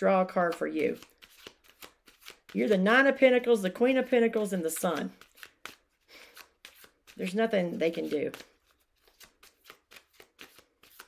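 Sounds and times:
cards being shuffled: 0.3s - 11.0s
soft card slaps: 8.0s - 11.0s.

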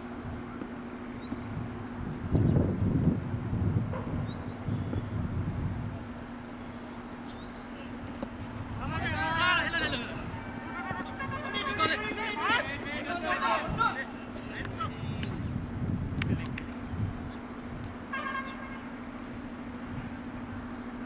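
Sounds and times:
steady low hum: 0.0s - 21.0s
person shouting: 8.8s - 14.1s.

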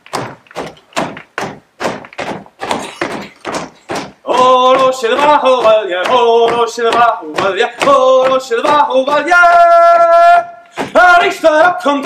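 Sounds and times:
boots stamping on stage floor: 0.0s - 12.0s.

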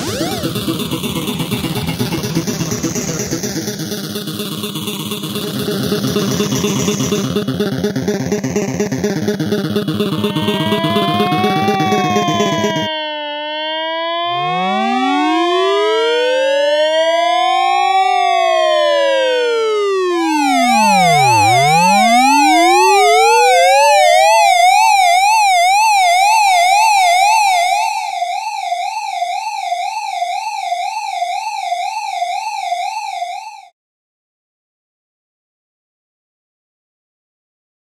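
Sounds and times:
emergency sirens wailing: 0.0s - 33.2s
siren yelp: 0.0s - 33.7s.

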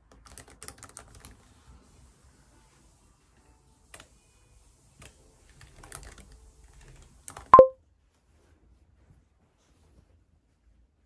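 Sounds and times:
laptop keyboard typing: 0.1s - 1.4s, 5.5s - 7.7s
short loud beep: 7.6s - 7.8s.

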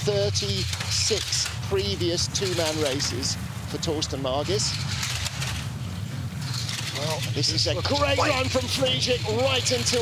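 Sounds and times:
bobsleigh runners rumbling on ice: 0.0s - 10.0s.

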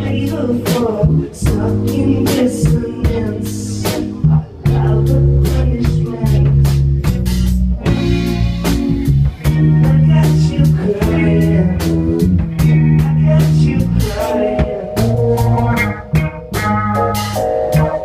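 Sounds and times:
bass guitar notes: 0.0s - 18.0s
drum kit beat: 0.0s - 18.0s
electric guitar: 0.0s - 18.0s.

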